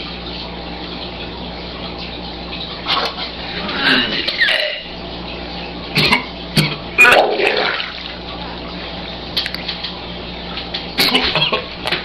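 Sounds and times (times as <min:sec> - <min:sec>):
man retching: 0:06.0 - 0:07.7
liquid splashing: 0:06.0 - 0:08.6.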